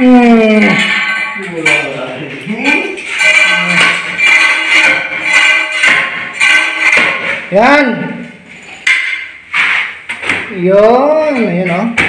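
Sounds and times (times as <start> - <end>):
metal scraper on tile: 2.6 - 7.5.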